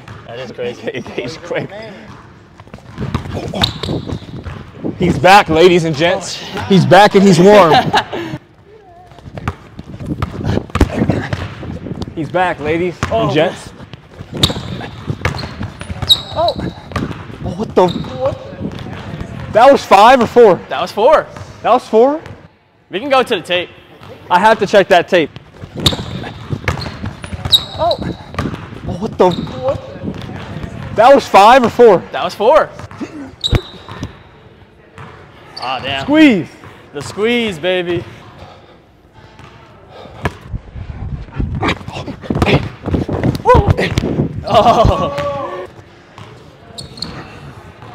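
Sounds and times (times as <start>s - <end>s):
sneaker squeak: 2.0s - 4.8s, 14.1s - 18.6s, 25.6s - 30.0s, 32.9s - 34.4s, 35.0s - 37.2s, 46.2s - 47.9s
basketball bouncing on wooden floor: 2.1s - 4.7s, 13.9s - 19.5s, 25.6s - 30.9s.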